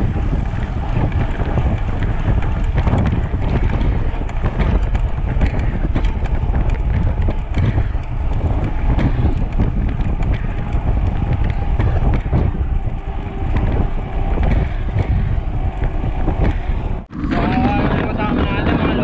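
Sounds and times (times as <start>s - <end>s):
small clicks and knocks from bumps: 0.0s - 17.0s
tyre hum on concrete road: 0.0s - 19.0s
wind buffeting microphone: 0.0s - 19.0s.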